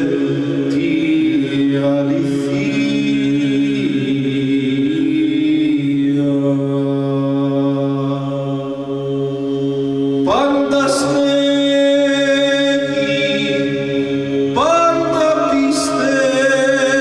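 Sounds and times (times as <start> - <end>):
male voices holding drone: 0.0 - 9.2, 10.2 - 17.0
solo male voice chanting: 10.2 - 17.0.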